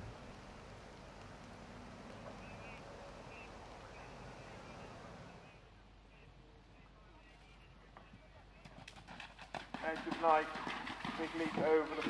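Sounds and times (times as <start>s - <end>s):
horse galloping on turf: 8.0s - 12.0s
commentator speaking: 11.2s - 12.0s.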